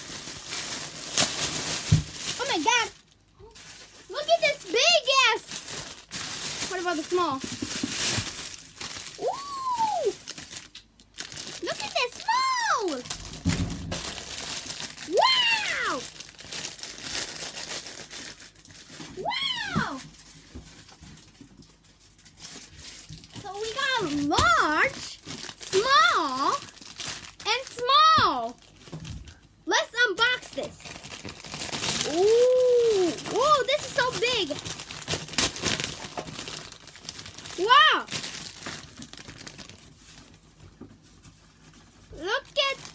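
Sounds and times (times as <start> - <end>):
plastic bag crinkling: 0.0 - 29.6, 30.2 - 42.9
soft thump: 13.4 - 14.0.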